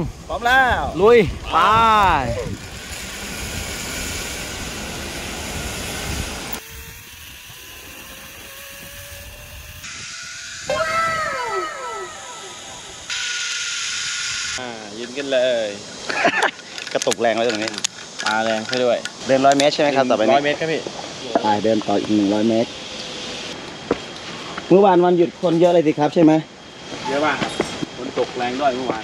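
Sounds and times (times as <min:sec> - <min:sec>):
wind rushing over microphone: 0:00.0 - 0:13.1
faint rising whine: 0:00.1 - 0:16.1
zipline trolley on steel cable: 0:00.4 - 0:19.8
person calling out: 0:10.7 - 0:13.1.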